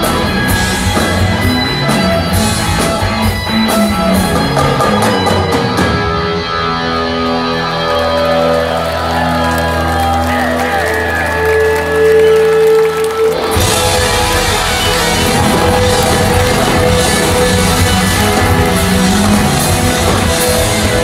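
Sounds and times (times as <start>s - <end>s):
drums and full band: 0.0s - 21.0s
electric guitars sustained chords: 0.0s - 21.0s
wavering lead guitar line: 0.0s - 21.0s.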